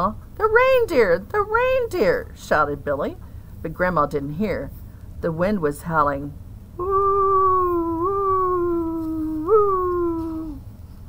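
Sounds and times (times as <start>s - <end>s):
person imitating howling wind: 6.8s - 10.7s.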